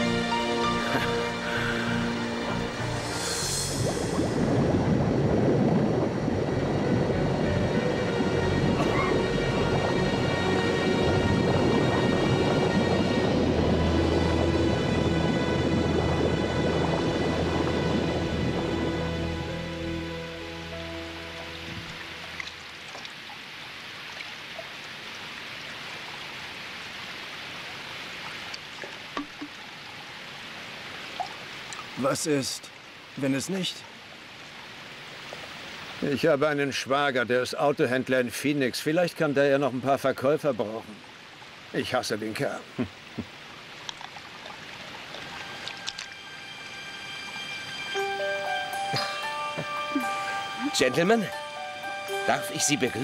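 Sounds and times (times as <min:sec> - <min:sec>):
film score music: 0:00.0 - 0:22.9, 0:44.7 - 0:53.0
water rushing and bubbling: 0:00.0 - 0:53.0
low rumble: 0:01.6 - 0:22.5.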